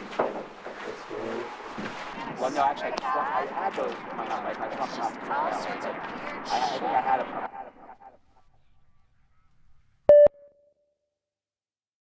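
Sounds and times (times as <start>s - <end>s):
short electronic beep: 10.1s - 10.8s.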